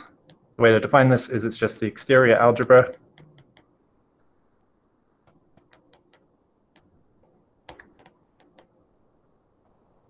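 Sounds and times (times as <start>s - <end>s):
stylus tapping on glass screen: 2.9s - 3.8s, 5.1s - 8.9s.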